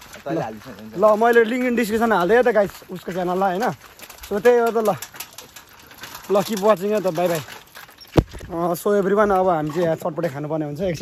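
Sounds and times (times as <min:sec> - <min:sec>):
faint scattered clicks: 0:00.0 - 0:10.6.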